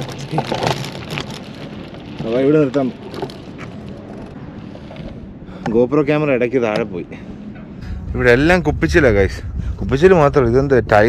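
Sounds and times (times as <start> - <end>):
bike tyres rolling over sandy dirt: 0.0 - 6.8.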